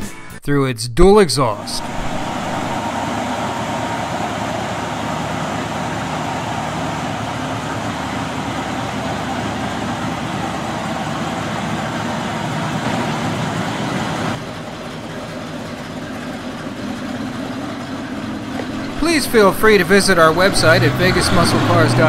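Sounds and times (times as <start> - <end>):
car engine running: 1.5 - 22.0.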